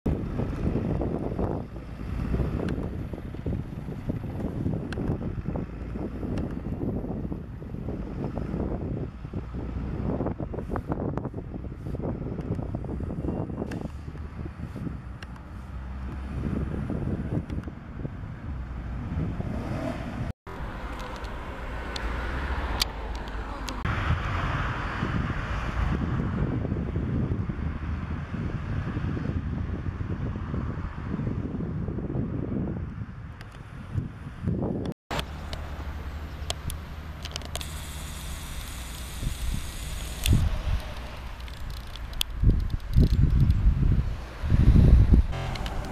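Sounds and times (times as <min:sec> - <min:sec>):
city bus running: 0:00.1 - 0:45.9
street traffic: 0:00.1 - 0:45.9
wind rumble on microphone: 0:00.1 - 0:45.9.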